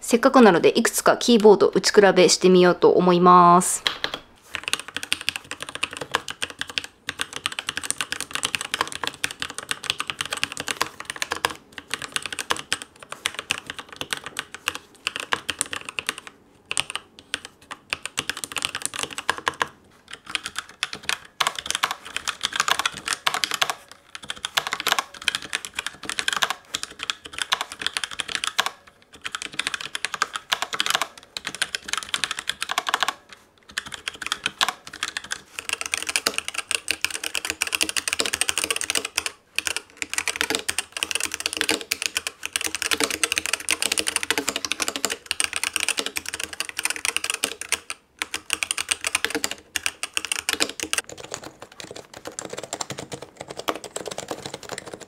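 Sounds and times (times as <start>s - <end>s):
typing on mechanical keyboard: 3.8s - 55.0s.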